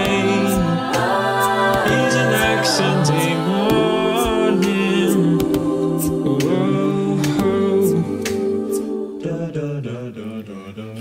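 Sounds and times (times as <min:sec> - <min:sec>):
a cappella group singing harmony: 0:00.0 - 0:11.0.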